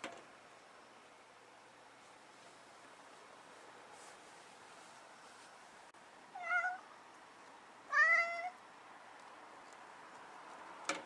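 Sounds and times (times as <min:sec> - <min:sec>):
cat meowing: 0:06.4 - 0:06.9, 0:07.9 - 0:08.6.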